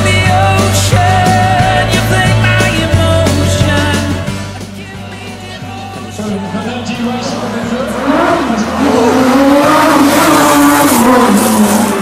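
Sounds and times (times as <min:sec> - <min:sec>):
car engine passing at speed: 0:07.0 - 0:12.0.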